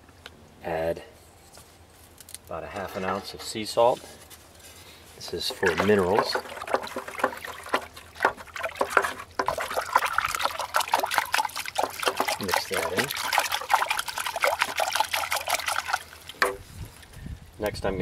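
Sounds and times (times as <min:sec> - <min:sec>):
wooden stick stirring water: 0:05.2 - 0:17.1
water sloshing in plastic bucket: 0:05.2 - 0:17.2.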